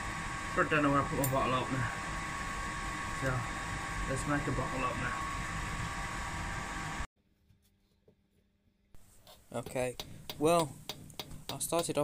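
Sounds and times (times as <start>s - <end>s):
fan hum with thin tone: 0.0s - 7.1s.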